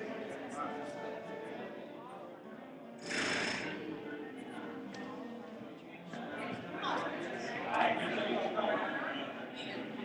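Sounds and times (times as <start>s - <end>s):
background voices in a hall: 0.0s - 10.0s.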